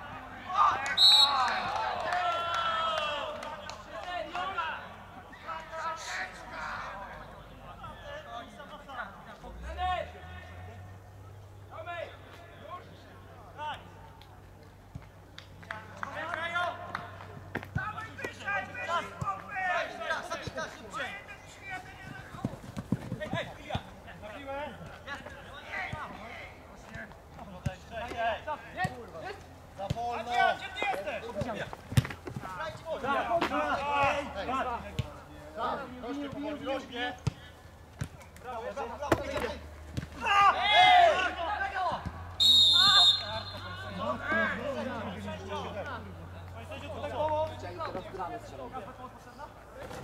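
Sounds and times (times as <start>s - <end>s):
players calling and shouting: 0.0s - 50.0s.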